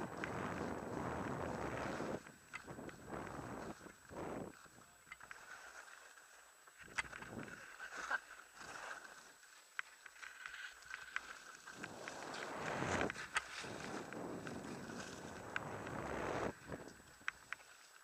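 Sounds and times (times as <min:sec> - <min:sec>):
wind rushing over microphone: 0:00.0 - 0:04.8, 0:11.7 - 0:17.4
ski edges scraping snow: 0:00.1 - 0:04.8, 0:07.5 - 0:18.0.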